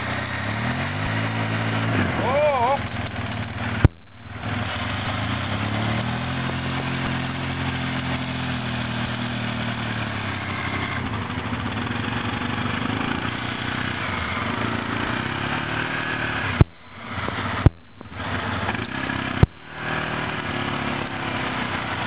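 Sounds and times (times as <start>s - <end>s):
quad engine running: 0.0s - 22.0s.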